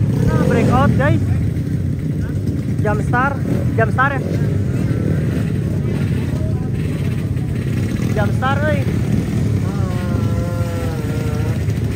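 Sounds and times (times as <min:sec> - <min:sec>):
motorcycle engines idling: 0:00.0 - 0:11.9.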